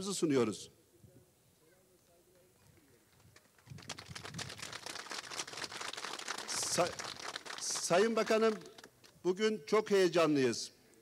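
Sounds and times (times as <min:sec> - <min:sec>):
crowd applauding: 0:03.6 - 0:08.8.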